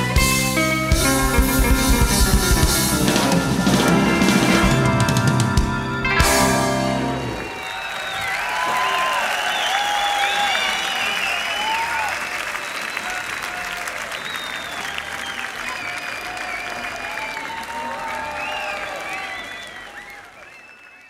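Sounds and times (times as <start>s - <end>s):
crowd applauding and cheering: 0.0s - 21.0s.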